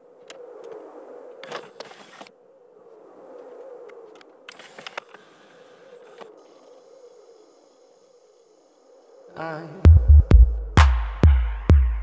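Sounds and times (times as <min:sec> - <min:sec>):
soft wavering hum: 0:00.0 - 0:10.8
faint hiss: 0:05.2 - 0:09.7.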